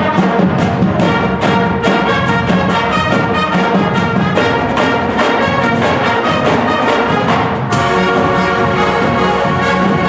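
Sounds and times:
pep band playing: 0.0 - 10.0.

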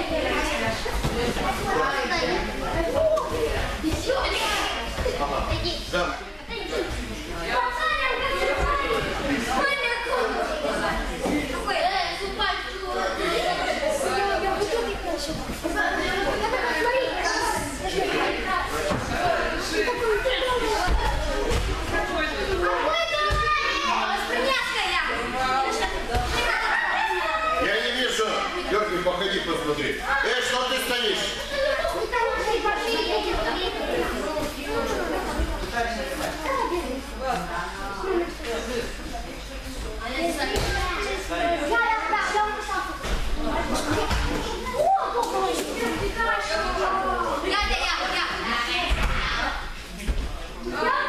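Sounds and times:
children talking and calling: 0.0 - 51.0.

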